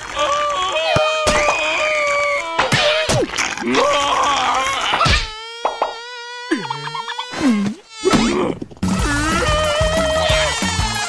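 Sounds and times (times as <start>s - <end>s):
cartoon mosquito wing buzz: 4.4s - 8.2s, 8.8s - 11.0s.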